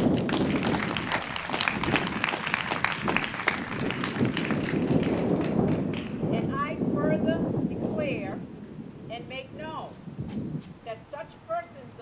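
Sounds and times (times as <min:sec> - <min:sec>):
audience applauding: 0:00.0 - 0:06.2.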